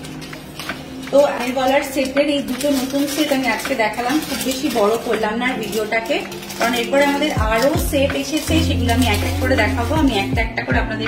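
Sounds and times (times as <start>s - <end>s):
plastic packet crinkling: 0.0s - 10.5s
woman talking: 1.1s - 11.0s.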